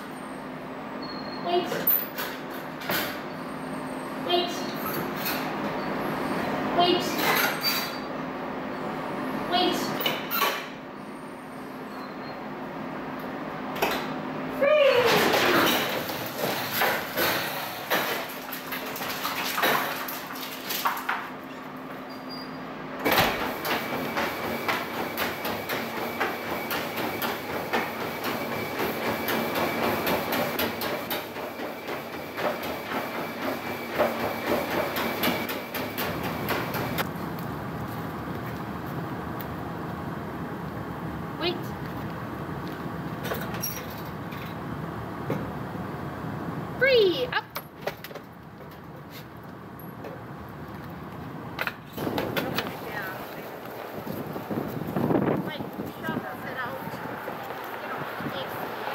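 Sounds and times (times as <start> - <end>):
treadmill whine: 0.0 - 46.8, 48.6 - 58.9
dog footfalls on treadmill: 23.0 - 37.1.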